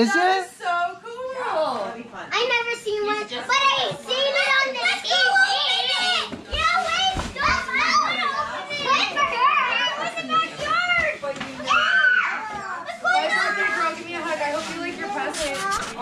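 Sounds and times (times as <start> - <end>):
children chattering excitedly: 1.1 - 16.0.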